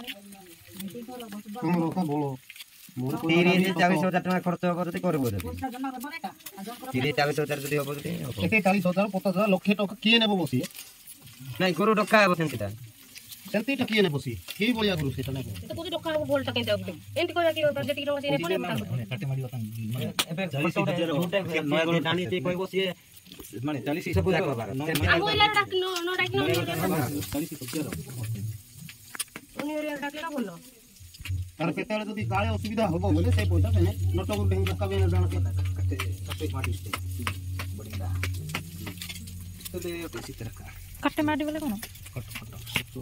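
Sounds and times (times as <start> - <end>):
women talking: 25.1 - 26.8, 29.6 - 30.8, 41.0 - 41.9.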